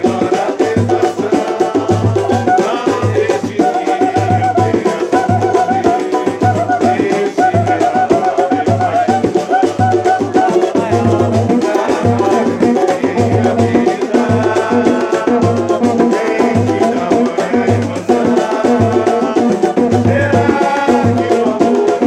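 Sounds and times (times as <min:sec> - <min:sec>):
deep drum beat: 0:00.0 - 0:22.0
man singing: 0:00.0 - 0:22.0.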